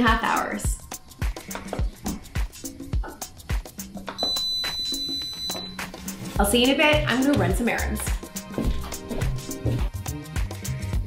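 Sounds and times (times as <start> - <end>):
background music with beat: 0.0 - 11.0
slow cooker electronic beep: 4.2 - 6.0.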